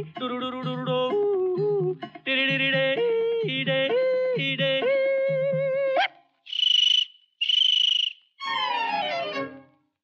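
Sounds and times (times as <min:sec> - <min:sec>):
shrill trills: 0:06.4 - 0:09.6.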